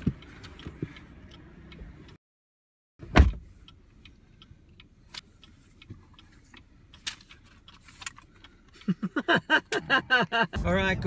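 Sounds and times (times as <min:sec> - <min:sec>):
car cabin rumble: 0:09.8 - 0:11.0.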